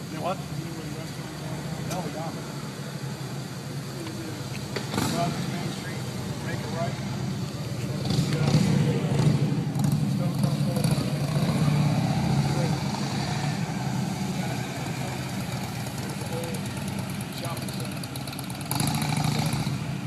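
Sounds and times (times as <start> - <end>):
low vehicle engine rumble: 0.0 - 20.0.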